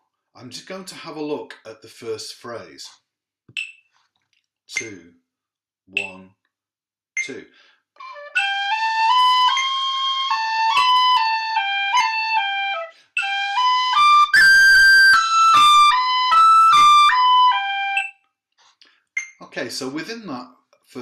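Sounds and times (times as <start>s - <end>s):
tin whistle melody: 8.0s - 18.2s.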